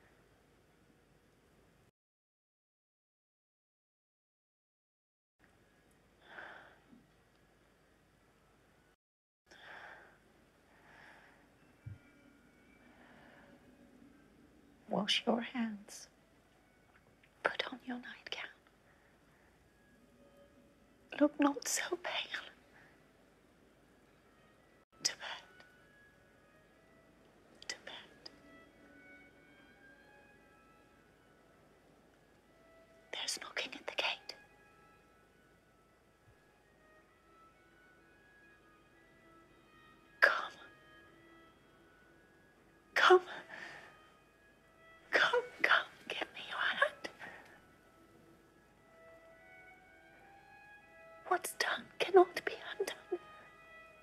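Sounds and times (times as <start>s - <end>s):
woman whispering: 17.4s - 18.6s, 21.2s - 22.6s, 25.0s - 25.6s, 27.6s - 28.3s, 33.1s - 34.3s, 40.2s - 40.7s, 43.0s - 43.5s, 45.2s - 47.5s, 51.3s - 53.3s.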